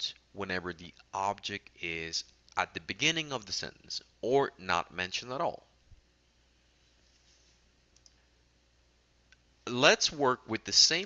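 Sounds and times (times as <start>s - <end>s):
low room hum: 0.0s - 11.0s
computer mouse clicks: 8.0s - 8.2s.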